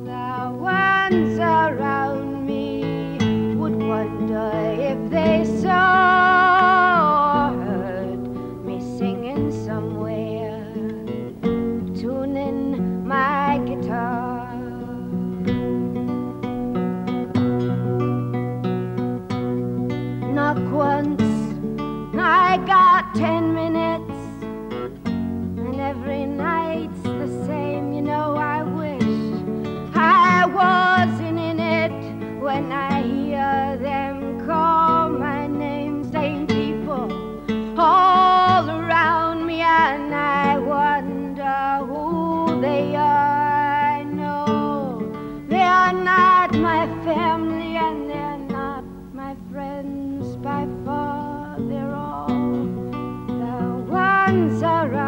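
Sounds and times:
acoustic guitar: 0.0 - 55.0
woman singing folk song: 0.0 - 55.0.

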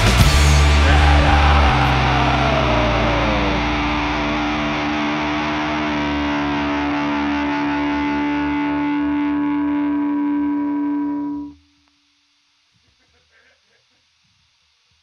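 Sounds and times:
distorted electric guitar chord: 0.0 - 11.8.

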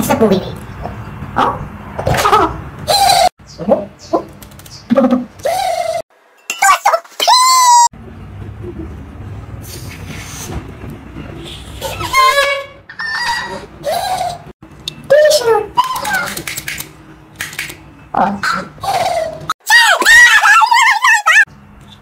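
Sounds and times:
pitched squeals: 11.2 - 14.5.

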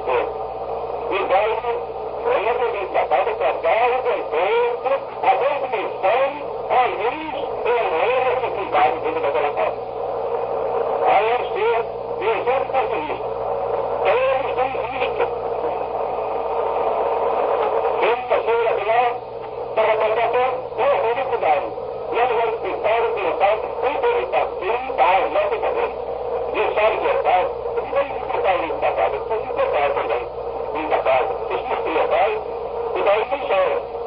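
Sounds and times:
low hum: 0.0 - 34.0
man preaching: 1.1 - 9.8, 11.0 - 13.2, 14.0 - 15.7, 18.0 - 33.9.

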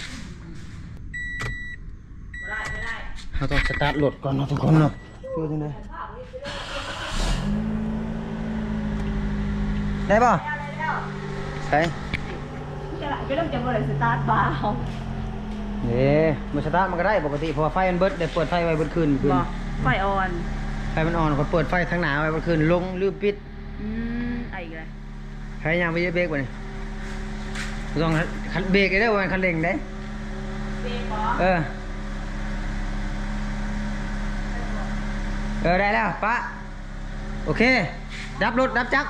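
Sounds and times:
man talking: 3.4 - 5.8, 10.0 - 10.4, 15.8 - 19.6, 20.9 - 23.4, 27.9 - 29.9
engine idling: 5.4 - 39.0.

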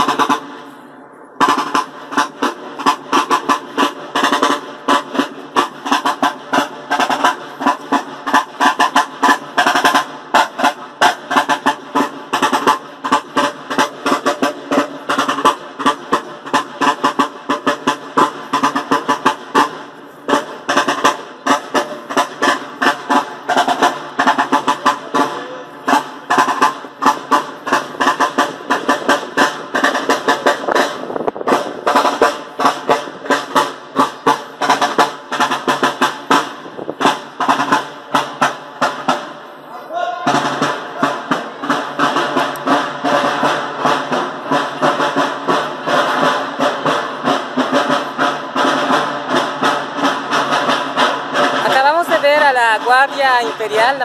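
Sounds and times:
side drum marching cadence: 0.0 - 54.0.

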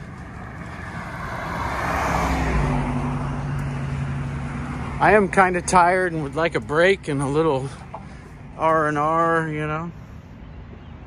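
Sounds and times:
low engine hum: 0.0 - 11.0
traffic passing: 0.0 - 11.0.

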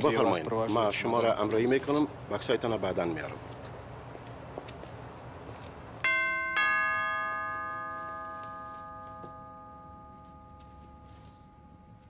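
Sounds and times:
two-note doorbell chime: 6.1 - 12.0.

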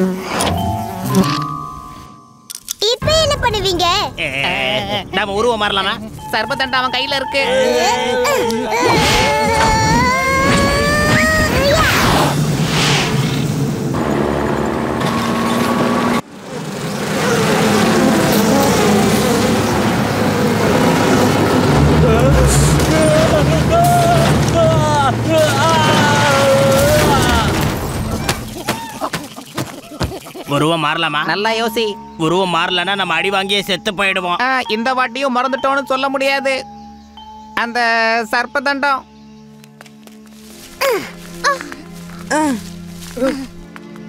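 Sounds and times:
cartoon truck engine running: 13.8 - 28.2.

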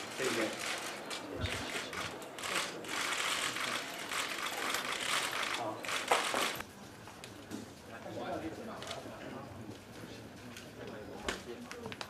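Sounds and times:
camera shutters clicking rapidly: 0.2 - 6.6.

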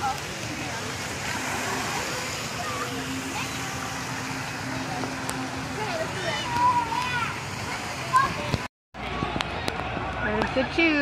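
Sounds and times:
children calling and shouting: 0.0 - 11.0
splashing water: 0.0 - 11.0.

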